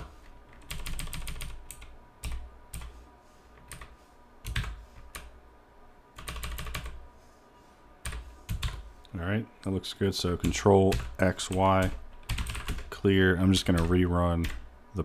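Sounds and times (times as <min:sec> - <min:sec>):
typing on computer keyboard: 0:00.5 - 0:02.9, 0:03.7 - 0:05.3, 0:06.2 - 0:07.0, 0:08.0 - 0:08.8, 0:10.4 - 0:12.9, 0:13.6 - 0:14.6.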